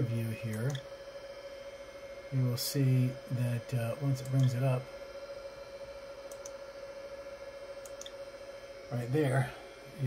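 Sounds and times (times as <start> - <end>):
background hum: 0.0 - 10.0
thin steady whine: 0.0 - 10.0.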